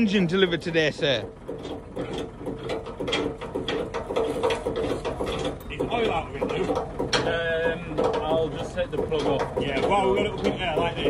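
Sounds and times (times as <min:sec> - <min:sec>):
metal knocks and clunks: 0:01.0 - 0:11.0.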